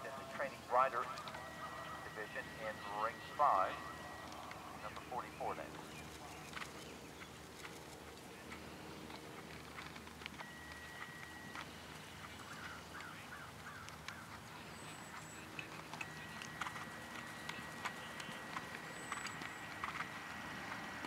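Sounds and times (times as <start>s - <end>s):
high thin tone: 0.9s - 5.6s
horse hoofbeats on grass: 4.0s - 21.0s.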